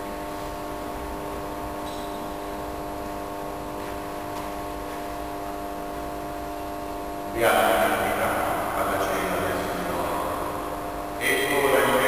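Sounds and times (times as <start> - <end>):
hum of held tones: 0.0 - 12.0.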